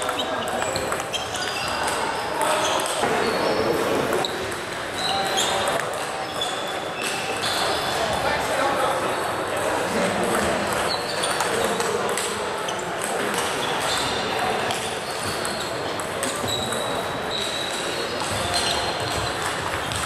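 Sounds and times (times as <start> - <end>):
murmur of voices: 0.0 - 20.0.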